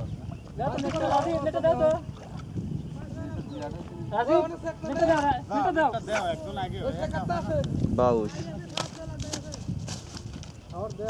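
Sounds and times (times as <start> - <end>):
people talking: 3.0 - 9.6.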